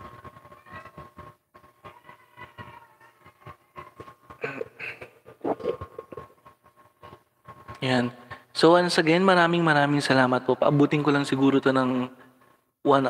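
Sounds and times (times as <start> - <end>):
muffled vocal sound: 3.3 - 6.4.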